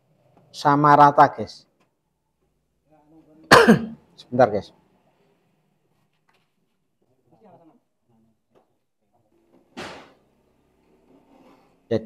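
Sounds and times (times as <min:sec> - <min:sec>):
man coughing: 0:03.5 - 0:04.0.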